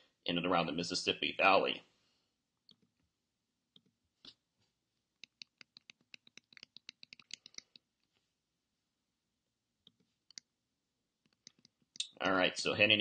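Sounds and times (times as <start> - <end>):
computer mouse clicking: 5.2 - 8.1, 9.8 - 10.5, 11.2 - 12.0.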